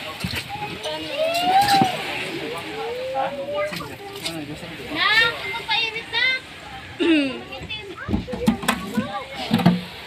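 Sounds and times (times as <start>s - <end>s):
young voices calling out: 0.5s - 4.1s, 4.8s - 8.1s.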